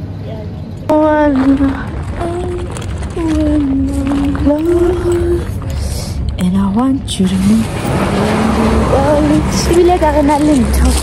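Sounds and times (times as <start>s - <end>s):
steady low rumble: 0.6s - 11.0s
woman speaking: 0.9s - 5.6s, 6.4s - 11.0s.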